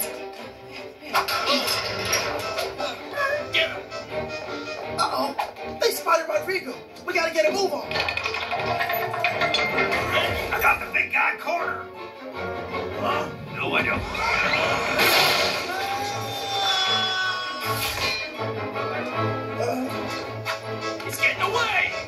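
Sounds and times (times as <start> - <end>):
cartoon score music: 0.0 - 22.0.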